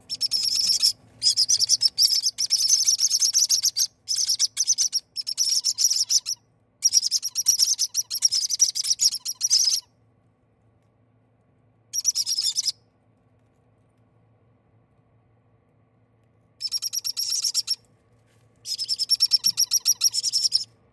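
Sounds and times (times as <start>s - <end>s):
parrot chicks chirping: 0.1s - 9.8s, 12.0s - 12.7s, 16.6s - 17.8s, 18.6s - 20.7s.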